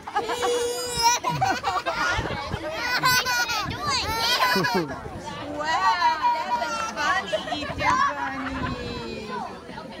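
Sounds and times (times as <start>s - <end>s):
people chattering: 0.0s - 10.0s.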